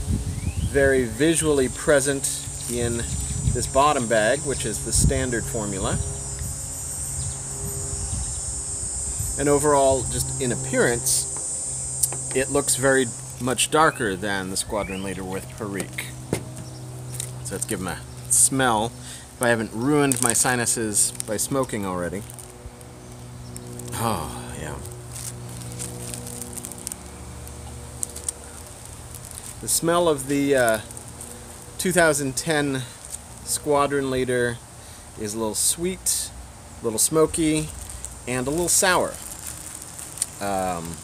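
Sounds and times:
wind rumble on microphone: 0:00.0 - 0:13.0
steady low hum: 0:00.0 - 0:41.0
insect chirring: 0:00.3 - 0:35.0, 0:35.8 - 0:41.0
plastic bag crackling: 0:19.4 - 0:31.9, 0:37.5 - 0:41.0.

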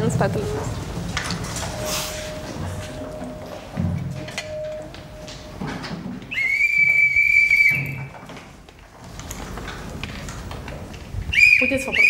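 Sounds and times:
faint knocks and shuffling: 0:00.0 - 0:06.3, 0:08.0 - 0:11.3
long high whistle: 0:06.3 - 0:08.2, 0:11.3 - 0:12.0.

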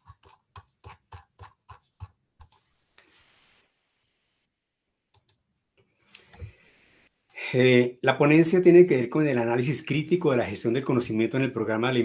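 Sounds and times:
computer mouse clicks: 0:00.2 - 0:02.7, 0:05.1 - 0:05.4.

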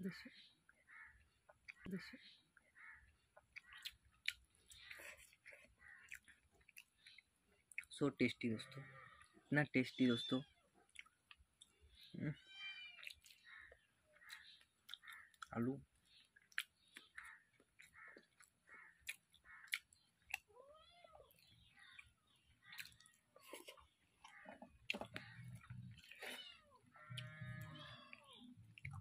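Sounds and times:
cat meowing: 0:12.4 - 0:13.1, 0:26.2 - 0:28.6.

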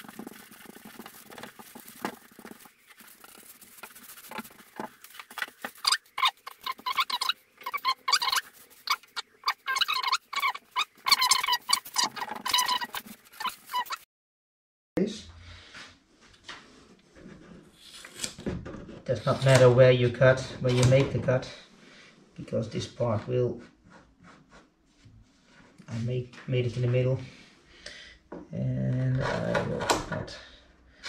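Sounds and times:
brush scraping epoxy: 0:00.0 - 0:14.0
hands scratching fiberglass tape: 0:00.0 - 0:14.0.

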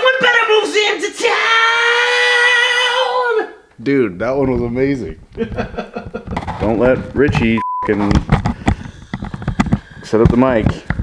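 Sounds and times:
microphone handling noise: 0:04.2 - 0:11.0.

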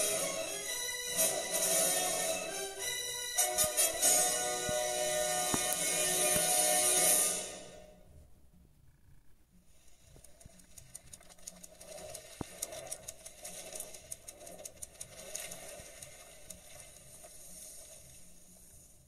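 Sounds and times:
low hum: 0:00.0 - 0:19.0
rapid uneven clicks: 0:09.8 - 0:18.7.

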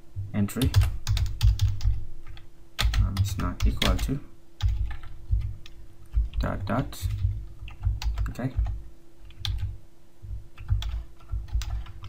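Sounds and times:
keyboard keystrokes: 0:10.6 - 0:12.0.

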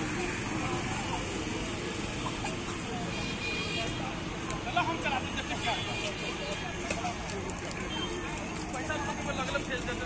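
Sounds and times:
people chatting in a crowd: 0:00.0 - 0:10.0
traffic hum: 0:00.0 - 0:10.0.

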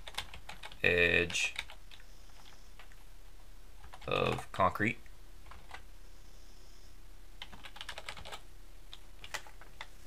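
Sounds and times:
computer keyboard keystrokes: 0:00.0 - 0:00.8, 0:03.8 - 0:04.4, 0:05.5 - 0:05.8, 0:07.4 - 0:09.9
faint steady hum: 0:00.0 - 0:10.0.

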